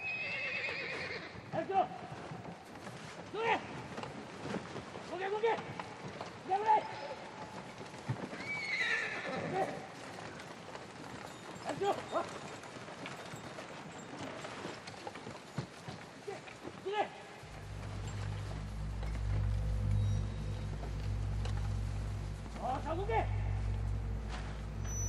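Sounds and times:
horses neighing: 0:00.0 - 0:01.6, 0:08.2 - 0:13.1
hooves clopping: 0:00.0 - 0:25.0.

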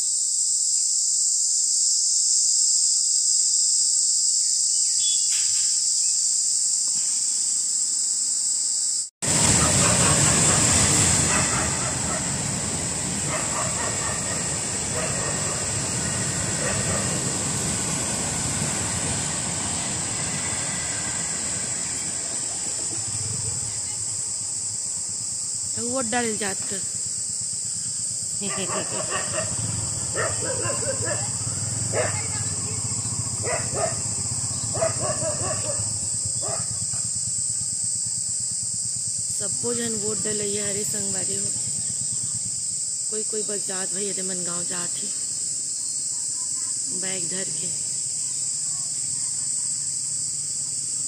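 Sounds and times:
chorus of tree insects: 0:00.0 - 0:51.0
freight train rumble and clatter: 0:09.4 - 0:23.9.

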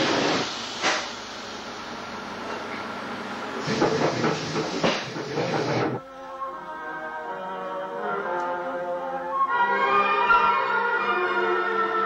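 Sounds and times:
sharp train clacks: 0:00.0 - 0:01.2, 0:03.6 - 0:06.0
loud train hiss: 0:00.0 - 0:06.0.

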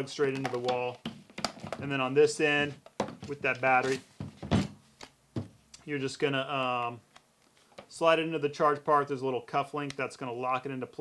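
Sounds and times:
knocks and clicks of battery pack: 0:00.3 - 0:01.9.

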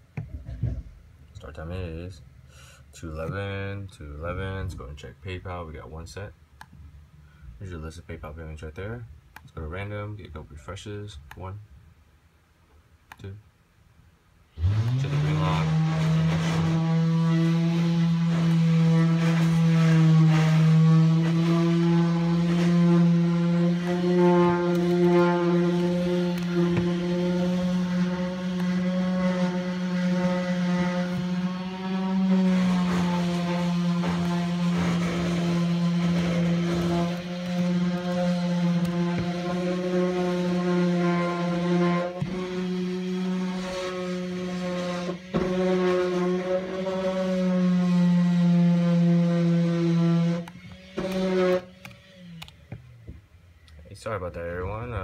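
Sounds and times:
machinery humming drone: 0:14.6 - 0:53.6.

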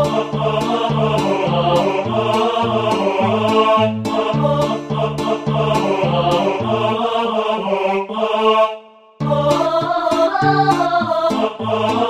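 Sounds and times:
synth bass: 0:00.0 - 0:07.0, 0:09.2 - 0:11.9
synthesized choir voices: 0:00.0 - 0:12.0.

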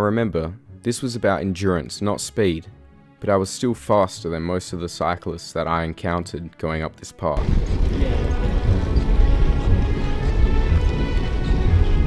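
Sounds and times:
background music: 0:00.0 - 0:12.0
wind buffeting microphone: 0:07.4 - 0:12.0.

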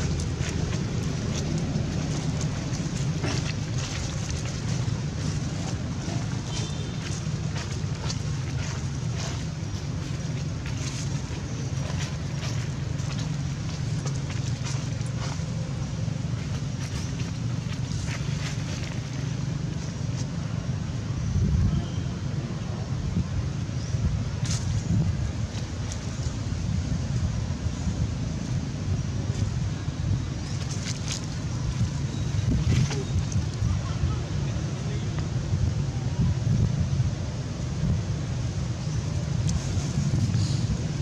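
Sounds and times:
faint rustles and clicks: 0:00.0 - 0:20.4
low outdoor rumble: 0:00.0 - 0:41.0.

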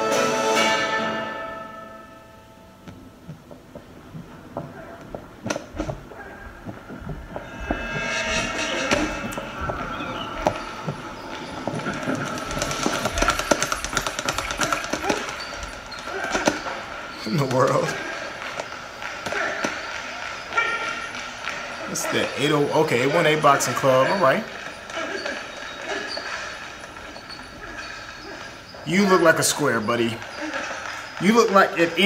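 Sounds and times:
film soundtrack music: 0:00.0 - 0:03.7, 0:06.6 - 0:14.7.

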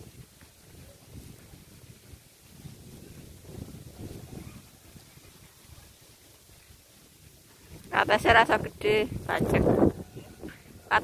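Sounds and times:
outdoor background noise: 0:00.0 - 0:11.0
woman's voice: 0:07.9 - 0:09.9.

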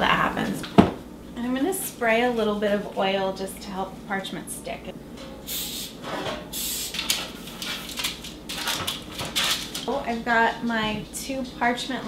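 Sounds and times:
oil sprayer hissing: 0:05.5 - 0:06.0, 0:06.6 - 0:07.0
parchment paper crinkling: 0:06.9 - 0:09.9.

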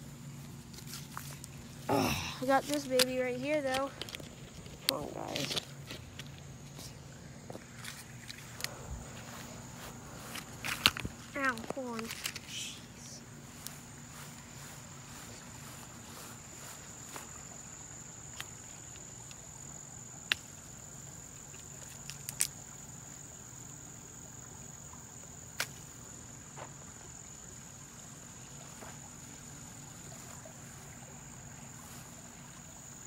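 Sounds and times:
insects trilling: 0:00.0 - 0:33.0.

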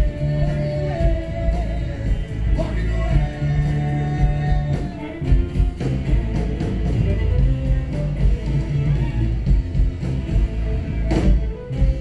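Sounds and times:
person singing: 0:00.0 - 0:09.4
live rock band playing: 0:00.0 - 0:12.0
violin: 0:00.0 - 0:12.0.

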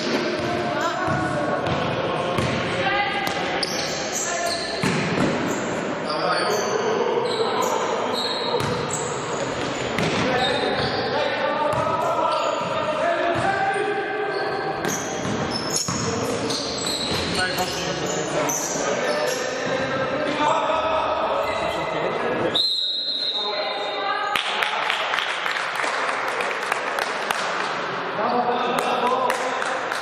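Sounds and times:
sneaker squeaks on court floor: 0:03.2 - 0:13.6, 0:14.3 - 0:19.9.

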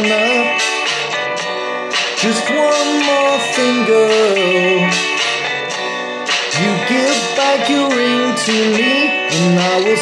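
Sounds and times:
guitar chords: 0:00.0 - 0:10.0
pop band music: 0:00.0 - 0:10.0
lead vocal singing: 0:06.5 - 0:10.0.

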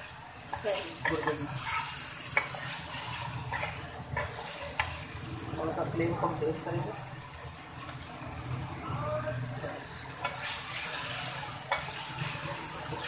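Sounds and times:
meat sizzling in hot oil: 0:00.0 - 0:13.0.

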